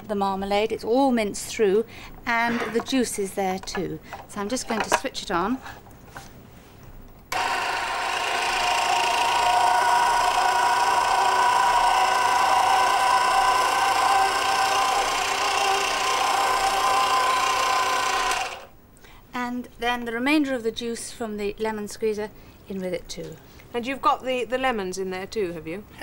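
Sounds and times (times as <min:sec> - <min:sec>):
electric mincer motor running: 0:07.3 - 0:18.7.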